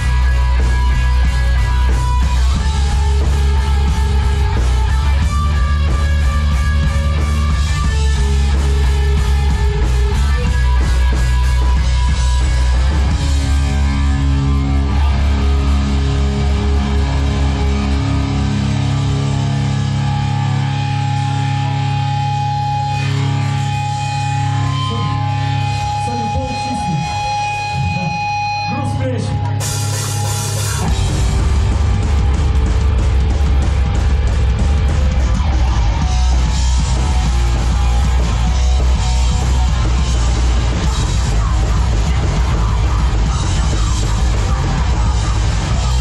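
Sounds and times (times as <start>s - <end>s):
punk band playing live: 0.0s - 46.0s.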